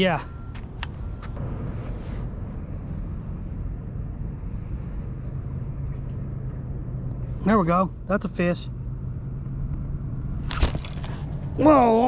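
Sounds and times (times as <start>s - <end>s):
low rumble with hum: 0.2s - 12.0s.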